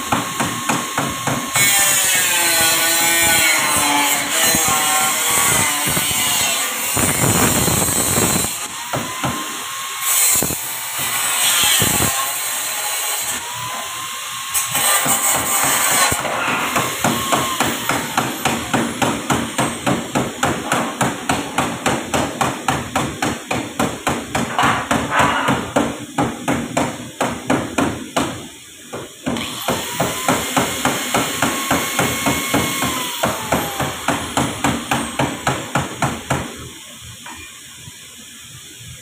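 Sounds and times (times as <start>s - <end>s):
hammer striking sheet metal: 14.7s - 28.4s.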